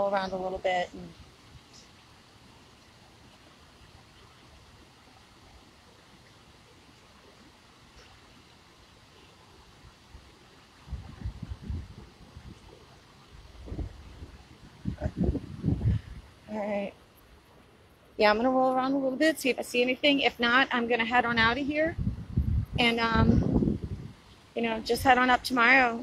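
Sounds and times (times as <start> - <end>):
outdoor background hiss: 0.0 - 26.0
low rumbling bumps on microphone: 10.9 - 12.7, 13.5 - 16.3.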